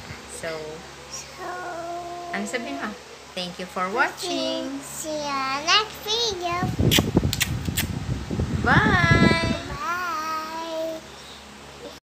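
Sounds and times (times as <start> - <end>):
child singing a farewell: 1.2 - 3.0, 8.8 - 11.1.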